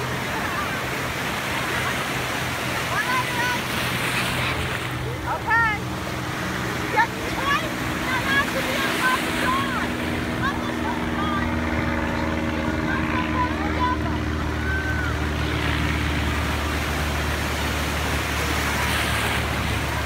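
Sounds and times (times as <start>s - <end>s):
low engine hum: 0.0s - 20.0s
ocean surf breaking: 0.0s - 20.0s.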